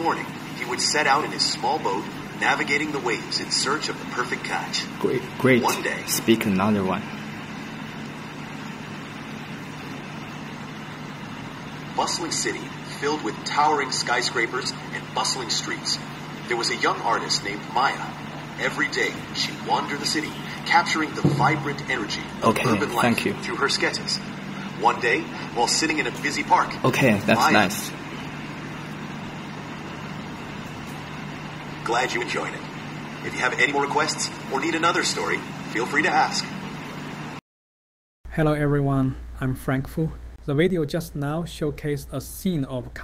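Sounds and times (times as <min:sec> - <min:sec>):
steady low hum: 0:00.0 - 0:37.4, 0:38.3 - 0:43.0
synthesized voice: 0:21.3 - 0:23.5, 0:26.8 - 0:28.0.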